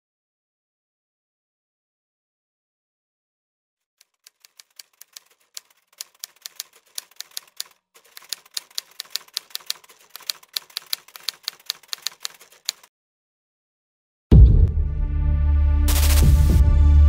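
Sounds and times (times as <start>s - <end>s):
typewriter keys clacking: 4.0s - 12.9s.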